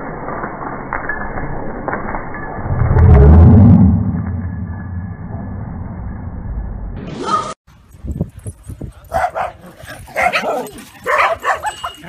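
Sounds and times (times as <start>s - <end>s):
puppies barking: 9.1s - 12.0s.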